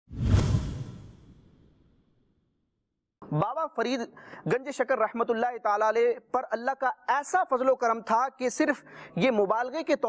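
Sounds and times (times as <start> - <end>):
whoosh sound effect: 0.1 - 1.9.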